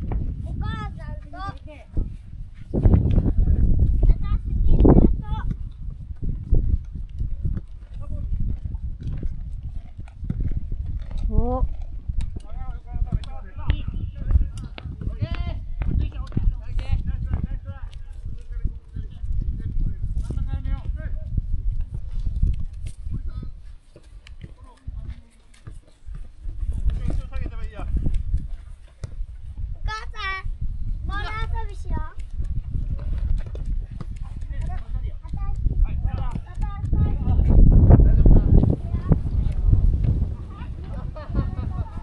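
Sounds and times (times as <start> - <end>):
ball being kicked: 28.8 - 29.3, 32.8 - 34.4
steady low rumble: 35.0 - 42.0.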